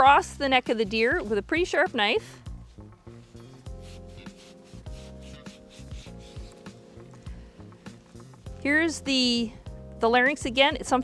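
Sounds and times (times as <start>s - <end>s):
background music with low pulse: 0.0s - 11.0s.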